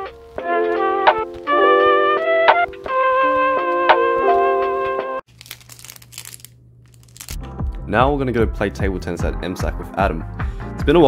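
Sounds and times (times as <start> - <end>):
music: 0.0 - 5.2, 7.3 - 11.0
plastic wrapper crinkling: 5.3 - 7.5.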